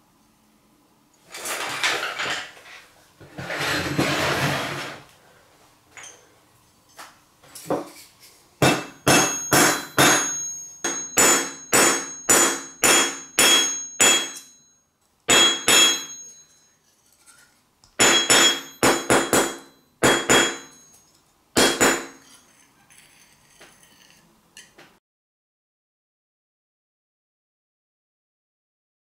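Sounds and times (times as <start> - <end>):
hammer striking metal: 8.6 - 16.8, 18.0 - 22.4.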